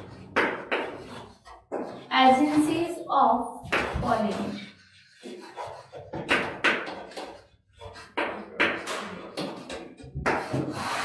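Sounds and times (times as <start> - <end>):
chalk scratching on blackboard: 0.0 - 2.9, 3.7 - 8.4, 10.2 - 11.0.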